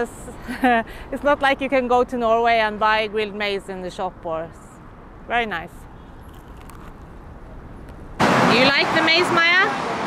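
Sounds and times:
road traffic rumble: 0.0 - 10.0
person chewing crunchy food: 6.2 - 7.2.

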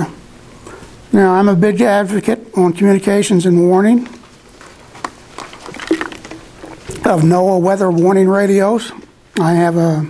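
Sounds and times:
plastic water bottle rustling: 4.0 - 7.3.

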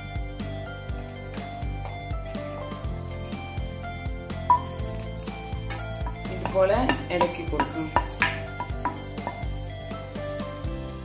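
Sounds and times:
background music: 0.0 - 11.0
food sizzling in oil: 3.1 - 10.7.

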